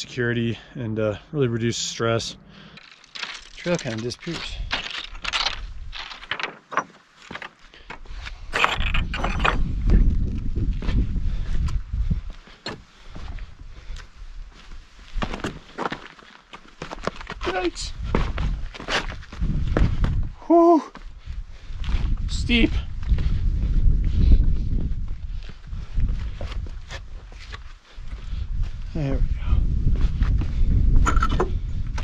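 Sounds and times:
footsteps on loose stones: 0:02.7 - 0:20.3, 0:20.9 - 0:28.8.

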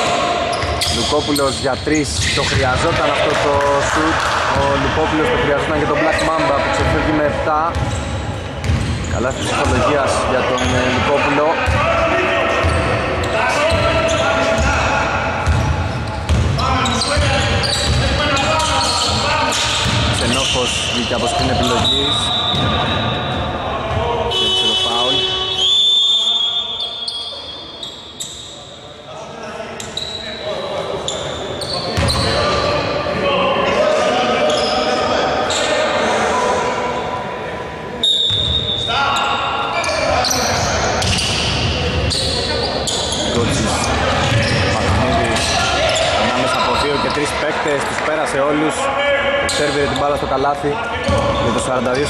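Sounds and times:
echoing voices: 0:00.0 - 0:52.0
basketball bouncing on floor: 0:15.4 - 0:15.7.

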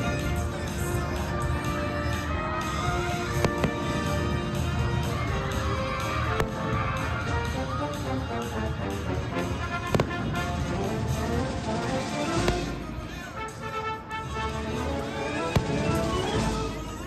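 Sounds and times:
show music: 0:00.0 - 0:17.0
fireworks bangs: 0:03.2 - 0:05.3, 0:06.1 - 0:07.0, 0:09.6 - 0:13.4, 0:15.3 - 0:17.0.

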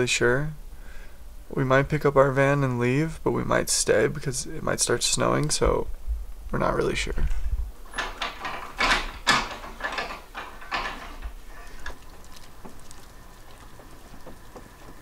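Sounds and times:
faint steady hum: 0:00.0 - 0:15.0
short rustles and knocks: 0:07.2 - 0:15.0.

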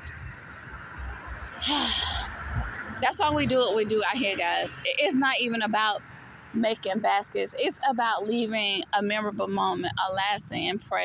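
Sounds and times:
woman sighing: 0:01.6 - 0:02.3.

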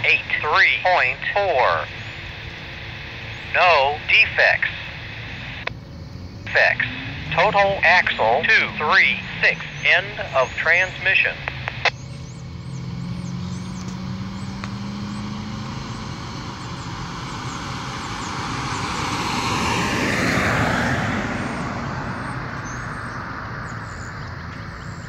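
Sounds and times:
car passing: 0:00.0 - 0:25.0
steady low rumble: 0:00.0 - 0:25.0.

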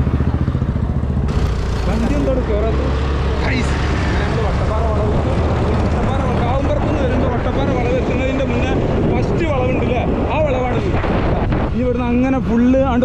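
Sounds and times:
motorcycle running: 0:00.0 - 0:13.0
man talking: 0:01.8 - 0:11.0, 0:11.7 - 0:13.0
wind on microphone: 0:04.3 - 0:13.0.

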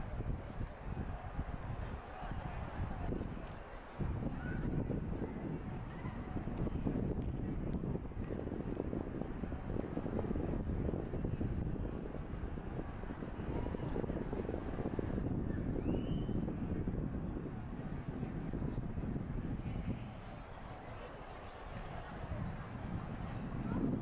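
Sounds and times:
wind rumble on microphone: 0:00.0 - 0:24.0.

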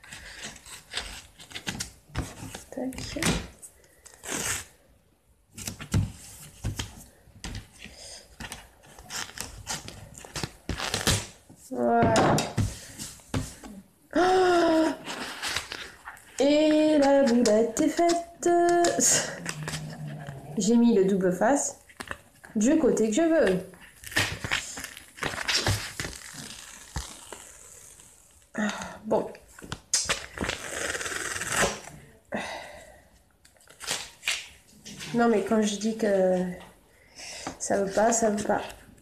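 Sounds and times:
cardstock and tape handling: 0:00.0 - 0:04.7, 0:05.5 - 0:13.8, 0:15.0 - 0:20.2
person making drawn-out sounds: 0:13.6 - 0:15.3, 0:18.6 - 0:20.8.

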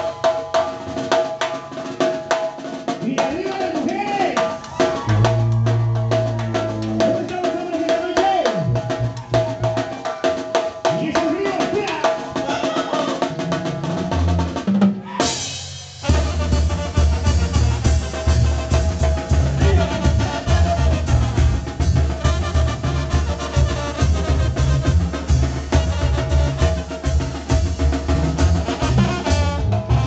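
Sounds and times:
brass band playing: 0:04.6 - 0:07.7, 0:11.6 - 0:30.0
tuba bass notes: 0:05.1 - 0:07.3, 0:16.0 - 0:30.0.

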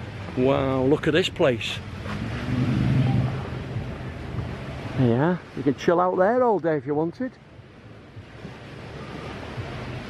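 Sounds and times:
wind on microphone: 0:00.0 - 0:05.7, 0:07.5 - 0:10.0
low steady rumble: 0:01.4 - 0:05.0.

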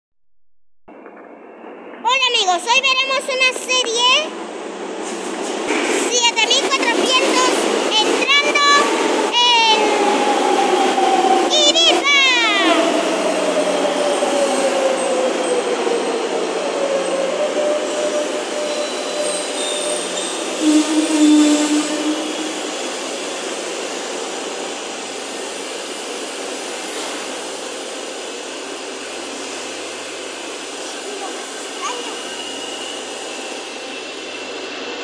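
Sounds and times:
train running noise: 0:00.9 - 0:35.0
metro train motor whine: 0:12.4 - 0:25.4
falling squeal: 0:17.0 - 0:23.2, 0:31.9 - 0:35.0.

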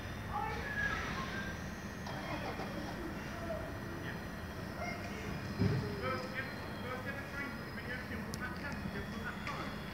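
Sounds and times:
diesel locomotives idling: 0:00.0 - 0:09.9.

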